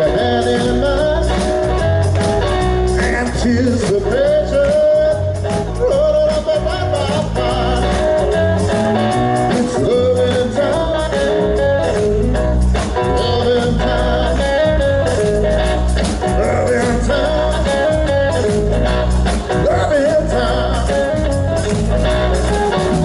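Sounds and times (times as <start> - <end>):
drum kit: 0.0 - 23.0
electric bass: 0.0 - 23.0
electric guitar: 0.0 - 23.0.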